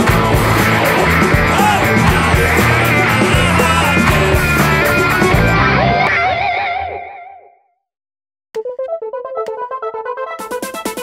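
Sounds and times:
electric guitar note with vibrato: 1.1 - 6.1.

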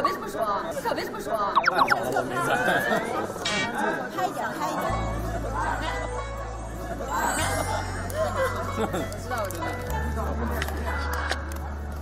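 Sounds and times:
background music: 4.9 - 12.0.

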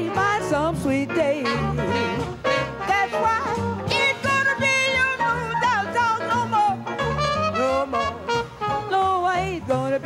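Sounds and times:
backing band: 0.0 - 10.0
walking bass line: 0.0 - 10.0
woman singing blues: 0.0 - 10.0.

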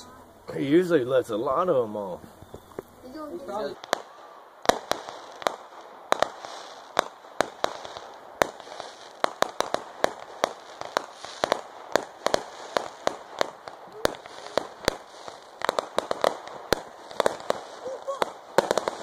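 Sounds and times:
fireworks crackling: 0.0 - 19.0
fireworks bangs: 0.6 - 19.0.

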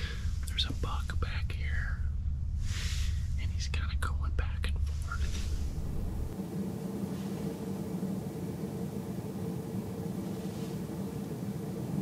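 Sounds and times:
man whispering: 0.0 - 2.1, 3.2 - 5.7
low rumble: 0.0 - 12.0.

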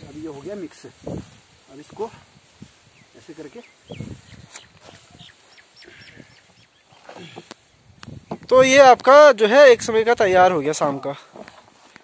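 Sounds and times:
rustle of dry fodder stirred: 0.0 - 7.1
bird chirping: 2.8 - 8.5.

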